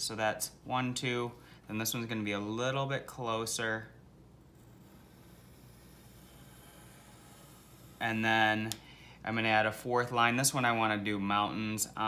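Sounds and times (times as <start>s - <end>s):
pencil scratching on paper: 4.4s - 8.2s.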